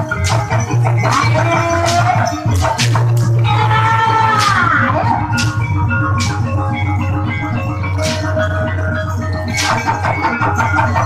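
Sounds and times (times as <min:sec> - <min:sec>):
metal keys ringing melody: 0:00.0 - 0:03.7
drum strokes: 0:00.0 - 0:11.0.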